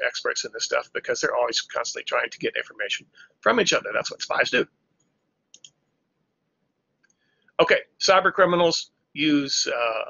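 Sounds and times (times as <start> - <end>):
faint quick clicks: 5.0 - 6.0.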